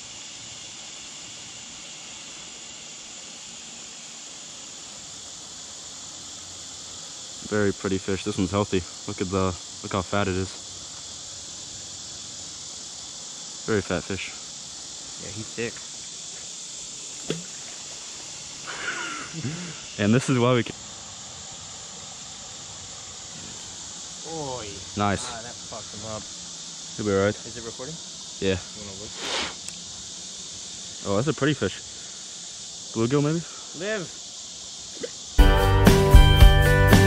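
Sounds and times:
insects chirping: 0:00.0 - 0:37.0.

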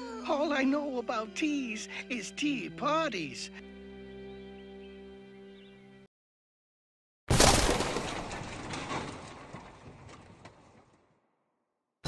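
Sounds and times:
blocks tumbling and clattering: 0:07.3 - 0:11.1.

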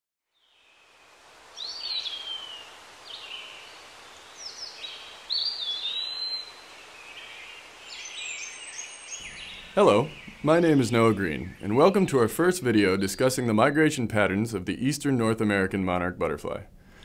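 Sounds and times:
steady outdoor hiss: 0:00.3 - 0:17.0
birds chirping: 0:00.4 - 0:16.4.

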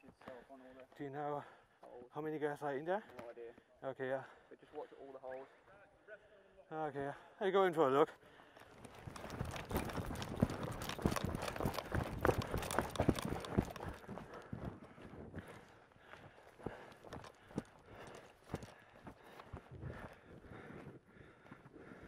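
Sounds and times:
footsteps on hard ground: 0:08.6 - 0:22.0.

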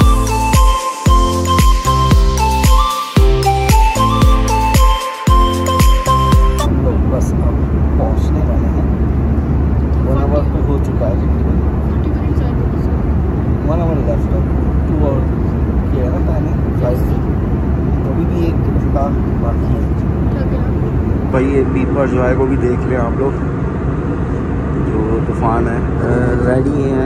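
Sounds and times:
airliner cabin drone: 0:00.0 - 0:27.0.

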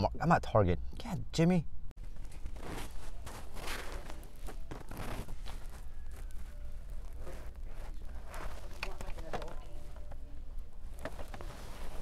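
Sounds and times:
scratching on phone microphone: 0:02.2 - 0:09.6, 0:10.9 - 0:12.0.

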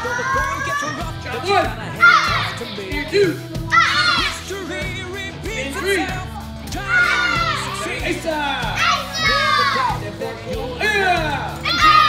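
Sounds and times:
children calling out: 0:00.0 - 0:04.5, 0:05.9 - 0:12.0
background music: 0:00.0 - 0:12.0.

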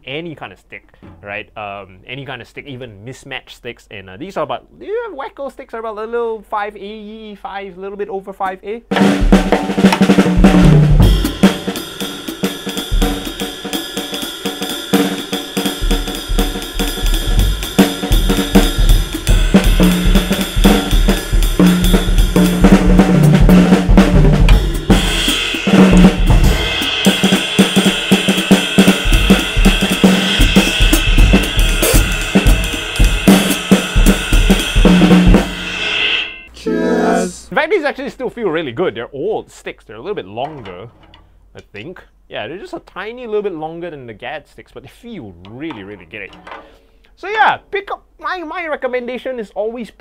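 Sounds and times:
bass drum: 0:08.9 - 0:35.8
snare drum strokes: 0:08.9 - 0:37.3
cymbals ringing: 0:24.5 - 0:37.5.

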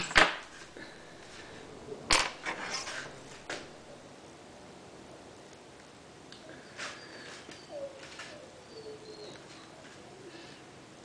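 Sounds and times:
objects clicking and knocking: 0:00.0 - 0:00.7
rustling: 0:00.0 - 0:04.0, 0:06.6 - 0:10.6.

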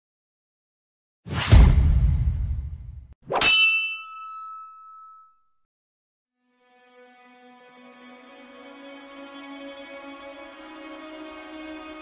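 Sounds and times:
low rumbling boom: 0:01.4 - 0:03.1
sharp metallic clang: 0:03.3 - 0:05.3.

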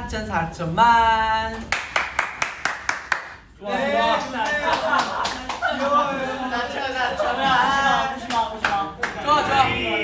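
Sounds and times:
people clapping in rhythm: 0:01.6 - 0:03.5, 0:04.1 - 0:05.8, 0:08.2 - 0:09.3.

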